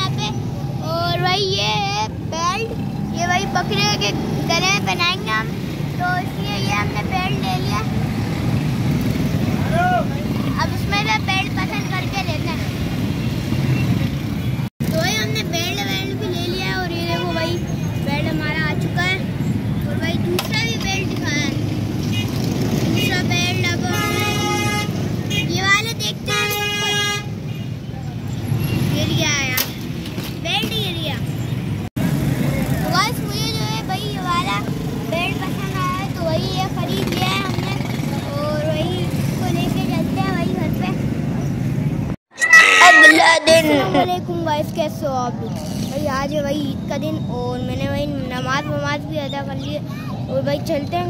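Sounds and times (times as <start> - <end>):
street traffic: 0.0 - 51.0
vehicle horn: 23.9 - 25.0, 26.3 - 27.3.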